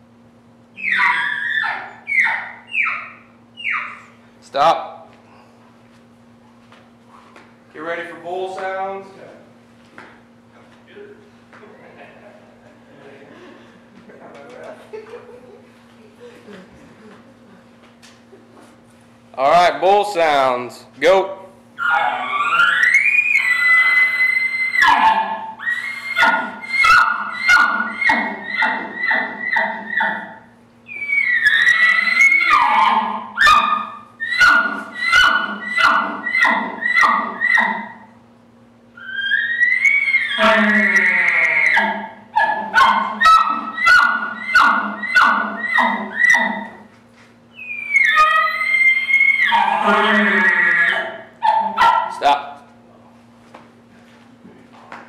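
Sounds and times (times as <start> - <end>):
elk call bugling: 0.8 - 4.2, 21.8 - 38.2, 39.0 - 46.9, 47.6 - 52.2.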